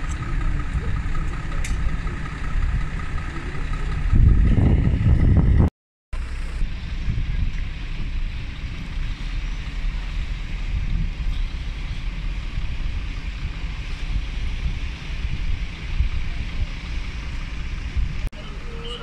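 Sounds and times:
wind buffeting microphone: 0:00.0 - 0:05.7, 0:06.6 - 0:19.0.

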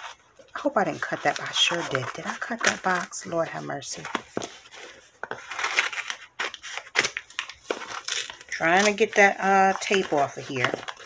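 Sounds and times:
tape and cardboard rustling: 0:00.0 - 0:11.0.

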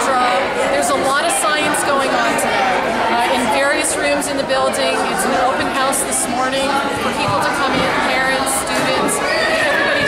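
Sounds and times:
woman talking: 0:00.0 - 0:02.5, 0:03.1 - 0:10.0
crowd chatter: 0:00.0 - 0:10.0.

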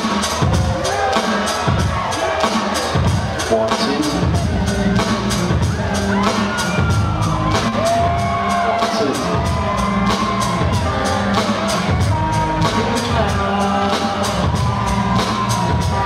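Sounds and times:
live hip-hop music: 0:00.0 - 0:16.0.

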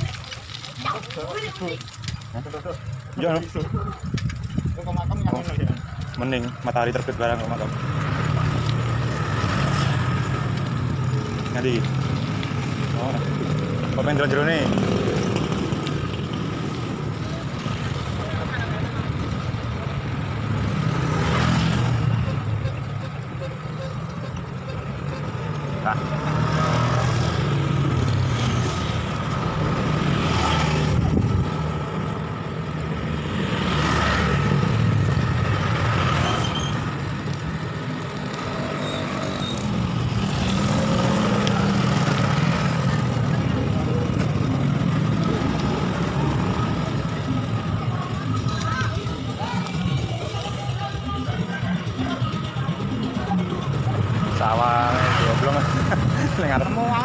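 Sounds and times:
motorbikes passing: 0:00.0 - 0:57.0
road traffic passing: 0:00.0 - 0:57.0
wind rushing over microphone: 0:30.8 - 0:31.8.

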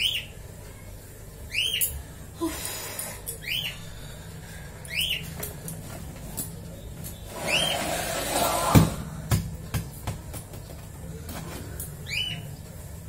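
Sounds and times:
high squeak: 0:07.3 - 0:08.8.

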